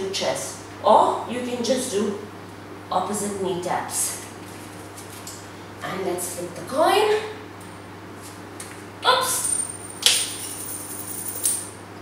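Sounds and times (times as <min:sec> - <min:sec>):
faint high coin ring: 0:09.4 - 0:11.8.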